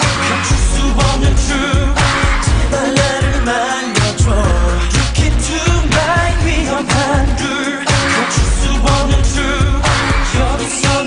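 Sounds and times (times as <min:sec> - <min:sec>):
electronic pop backing track: 0:00.0 - 0:11.0
man singing: 0:00.0 - 0:11.0.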